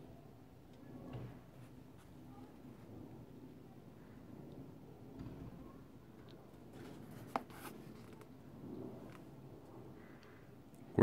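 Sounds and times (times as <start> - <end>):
sneaker rubbing and rustling: 6.7 - 8.2.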